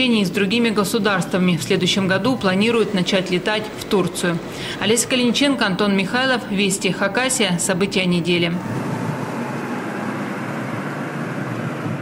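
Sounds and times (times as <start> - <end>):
airliner jet engine overhead: 0.0 - 12.0.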